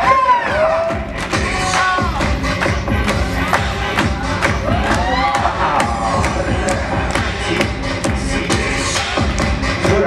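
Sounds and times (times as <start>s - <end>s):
crowd cheering and whooping: 0.0s - 2.2s, 4.0s - 7.0s
loud dance music: 0.0s - 10.0s.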